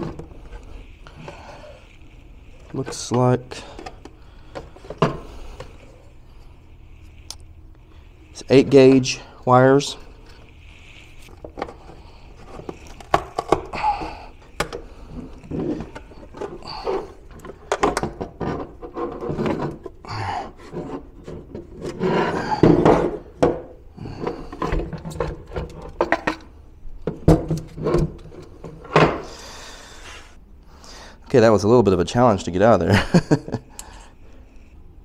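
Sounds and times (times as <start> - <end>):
plastic scraping against plastic: 0.0 - 30.1.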